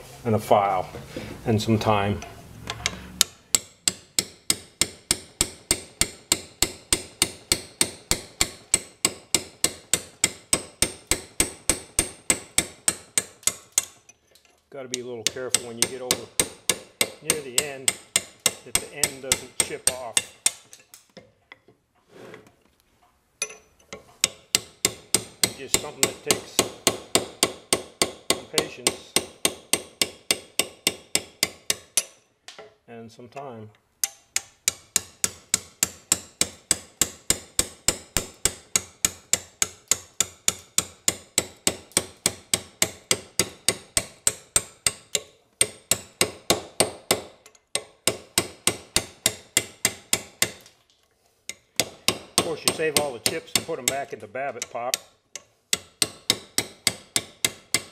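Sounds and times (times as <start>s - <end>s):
hammer tapping metal chisel: 2.2s - 21.8s, 23.4s - 32.8s, 33.4s - 57.9s.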